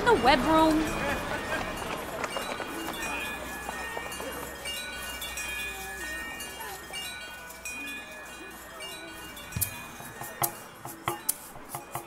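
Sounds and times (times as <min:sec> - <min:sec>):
chimes tinkling: 0:00.0 - 0:12.0
faint murmuring voices: 0:00.5 - 0:12.0.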